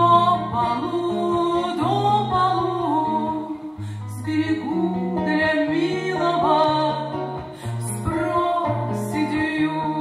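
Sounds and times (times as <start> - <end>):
acoustic guitar: 0.0 - 10.0
women singing: 0.0 - 10.0.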